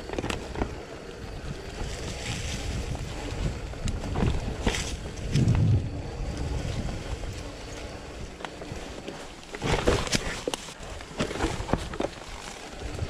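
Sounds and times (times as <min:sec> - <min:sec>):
wind buffeting microphone: 0:00.0 - 0:10.4
bike knocking and rattling: 0:00.0 - 0:13.0
bike tyres on leaves: 0:00.0 - 0:13.0
low rumble: 0:01.5 - 0:07.8.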